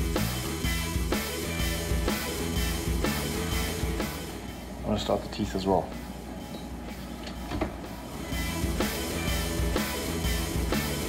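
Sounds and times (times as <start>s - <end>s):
steady low hum: 0.0s - 11.0s
oven door opening: 7.2s - 7.8s.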